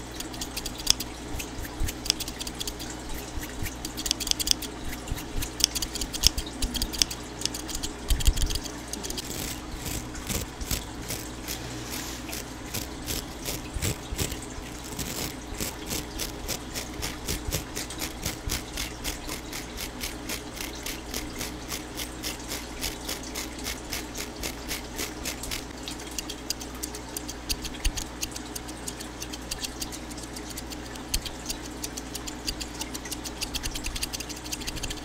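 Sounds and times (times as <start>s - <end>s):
scissors clicking and snipping: 0.0s - 11.6s, 12.3s - 35.0s.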